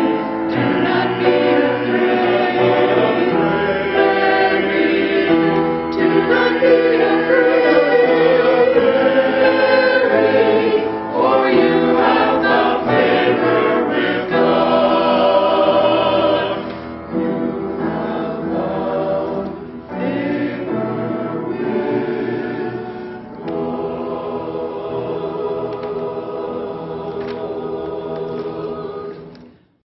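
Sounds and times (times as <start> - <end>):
mixed choir singing: 0.0 - 29.6.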